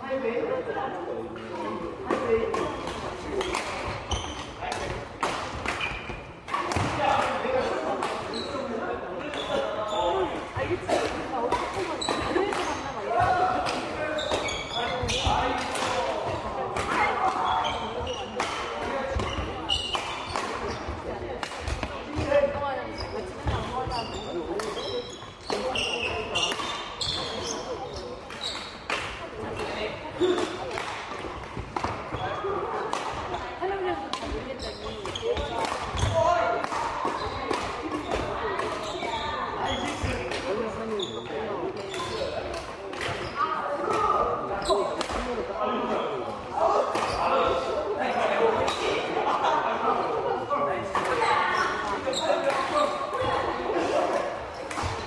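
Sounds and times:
indistinct chatter echoing: 0:00.0 - 0:55.0
rackets hitting shuttlecocks: 0:02.0 - 0:08.3, 0:28.3 - 0:33.4, 0:34.1 - 0:38.8.

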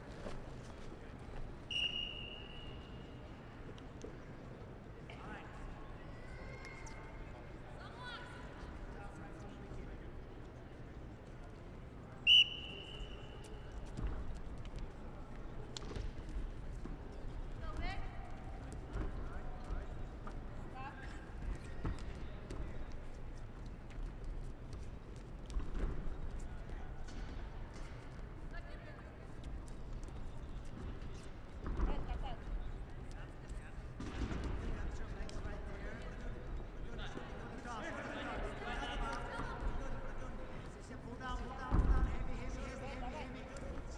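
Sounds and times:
referee whistle blast: 0:01.7 - 0:02.8, 0:12.3 - 0:13.1.

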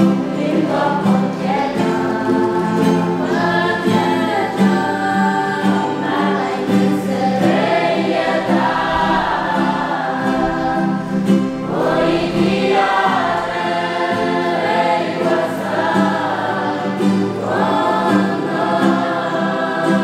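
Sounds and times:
acoustic guitars playing: 0:00.0 - 0:20.0
group singing a hymn: 0:00.0 - 0:20.0.

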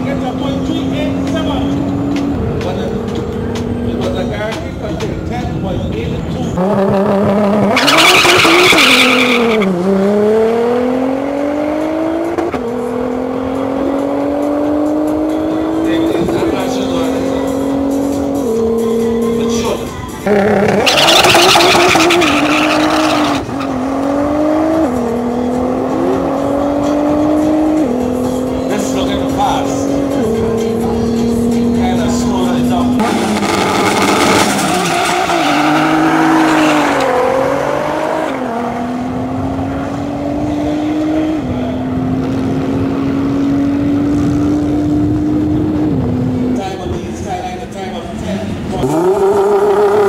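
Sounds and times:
car engine at full throttle: 0:00.0 - 0:50.0
engines revving unevenly: 0:00.0 - 0:50.0.

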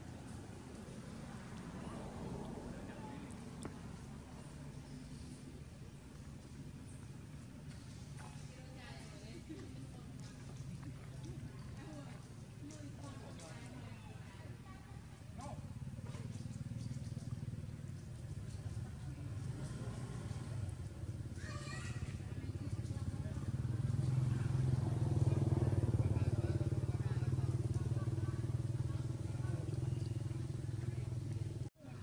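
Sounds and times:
low engine hum: 0:00.0 - 0:32.0.

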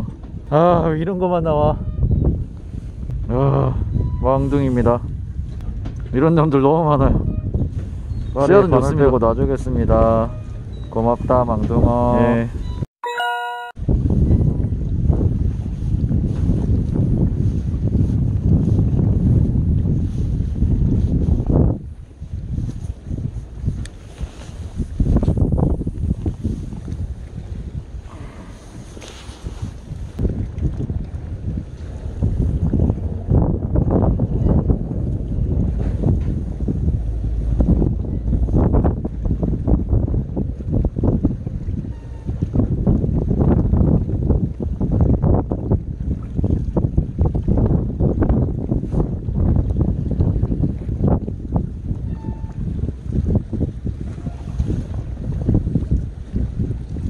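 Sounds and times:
wind buffeting microphone: 0:00.0 - 0:12.9, 0:13.8 - 0:57.0
sea water lapping: 0:14.3 - 0:57.0.

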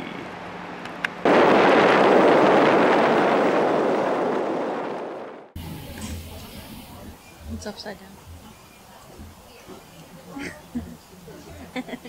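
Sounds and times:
loud burst of noise: 0:01.2 - 0:07.2.

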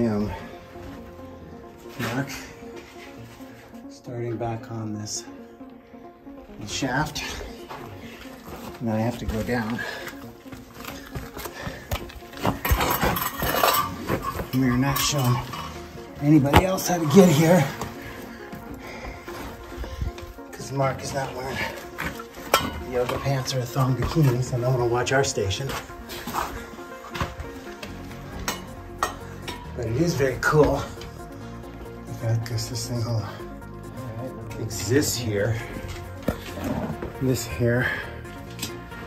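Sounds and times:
background music: 0:00.0 - 0:39.0
shoes and hands scuffing on rock: 0:07.7 - 0:14.5
metal bottle scraping on rock: 0:12.4 - 0:17.8.

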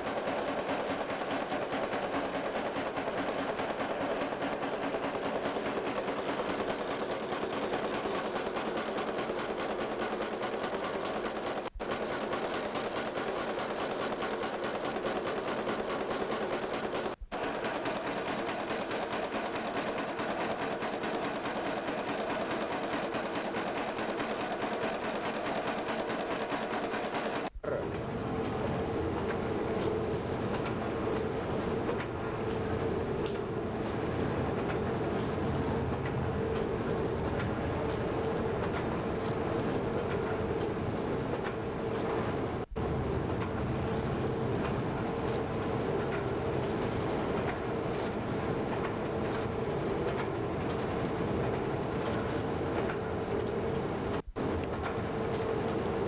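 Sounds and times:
nail making machine clatter: 0:00.0 - 0:27.6.

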